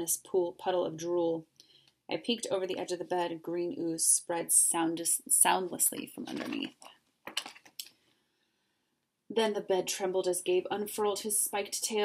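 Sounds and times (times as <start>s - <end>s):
book page turning: 6.0s - 7.8s.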